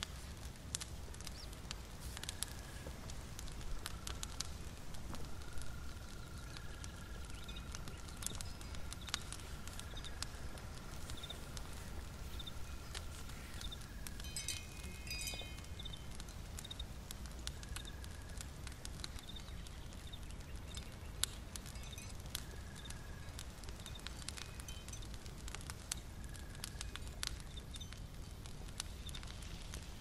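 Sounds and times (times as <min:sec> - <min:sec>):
wood fire crackling: 0:00.0 - 0:30.0.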